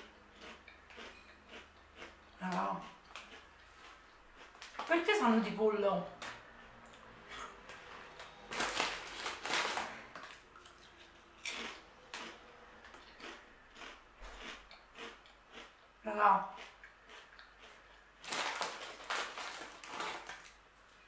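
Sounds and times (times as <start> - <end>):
nachos being chewed: 0.0 - 5.0, 6.5 - 20.6.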